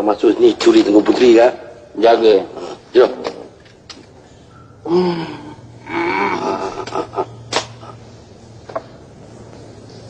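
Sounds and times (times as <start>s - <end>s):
wordless vocal sounds: 4.8s - 8.2s.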